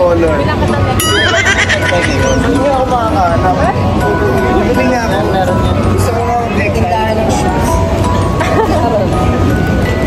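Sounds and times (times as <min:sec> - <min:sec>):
crowd chatter: 0:00.0 - 0:10.0
squeal of laughter: 0:01.1 - 0:02.4.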